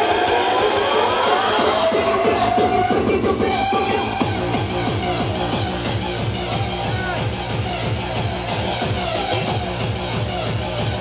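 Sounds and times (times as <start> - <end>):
synth line sweeping upward: 0.0 - 5.2
hardcore dance music: 0.0 - 11.0.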